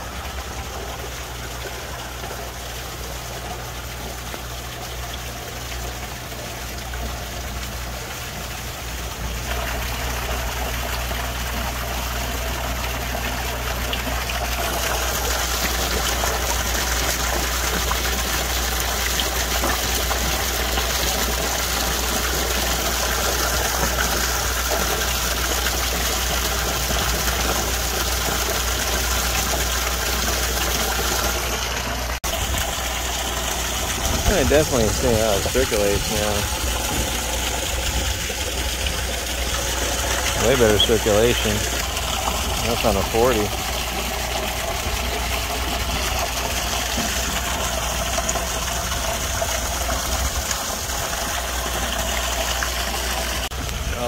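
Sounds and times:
pond water rushing and gurgling: 0.0 - 54.0.

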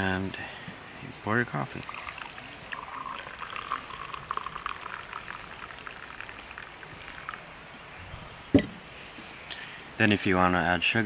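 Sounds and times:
coffee pouring into a cup: 1.6 - 8.0.

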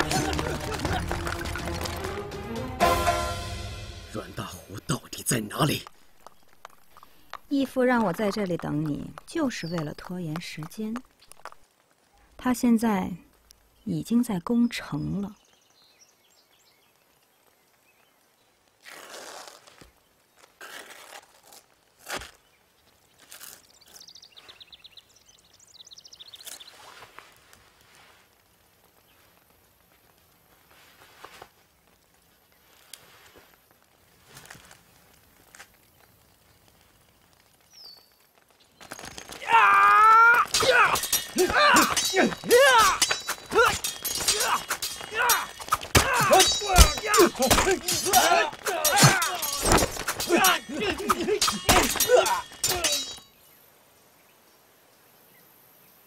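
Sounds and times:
men shouting and yelling: 0.0 - 2.2, 39.4 - 53.2
metal weapons clashing: 40.4 - 53.3.

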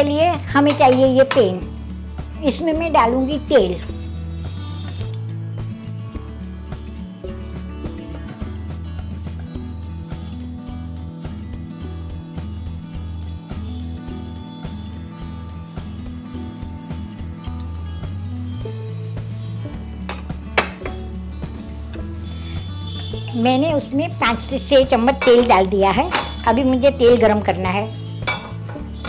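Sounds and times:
background music with beat: 3.8 - 23.6.

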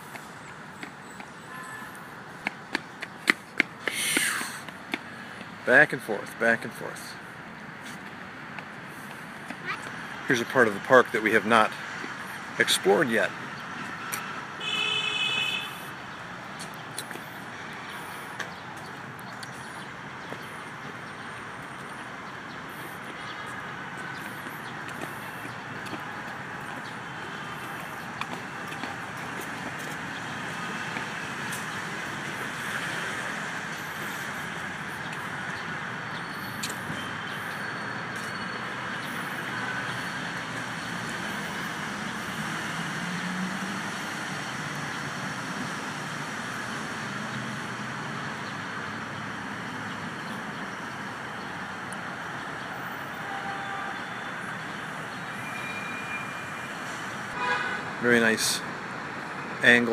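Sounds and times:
city traffic hum: 0.0 - 59.9.

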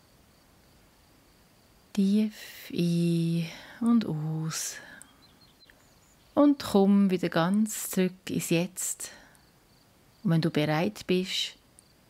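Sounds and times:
person speaking: 2.0 - 4.8, 6.4 - 9.1.

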